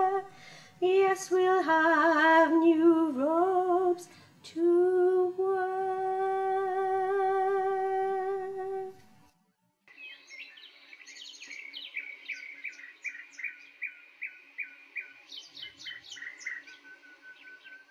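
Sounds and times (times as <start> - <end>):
woman singing: 0.0 - 9.0
bird chirping: 9.9 - 17.9.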